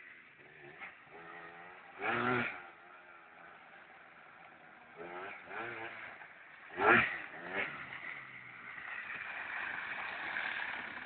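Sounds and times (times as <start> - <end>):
quad bike engine revving: 0.4 - 11.0.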